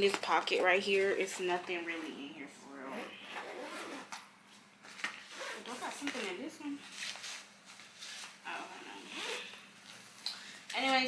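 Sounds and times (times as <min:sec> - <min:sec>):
zipper being pulled: 0:01.9 - 0:04.2, 0:05.2 - 0:06.3, 0:08.2 - 0:09.6.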